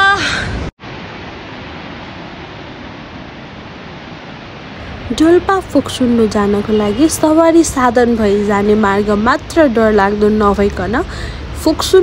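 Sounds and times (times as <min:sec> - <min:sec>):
waterfall rushing: 0:00.8 - 0:12.0.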